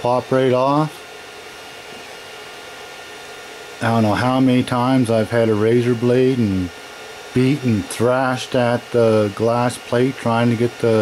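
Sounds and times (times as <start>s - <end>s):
person speaking: 0.0s - 1.0s, 3.8s - 6.7s, 7.4s - 11.0s
cooling fans whirring: 0.0s - 11.0s.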